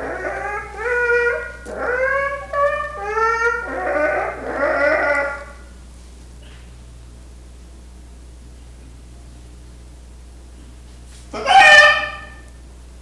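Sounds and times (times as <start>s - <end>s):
man imitating animal cries: 0.0s - 5.6s, 11.4s - 12.4s.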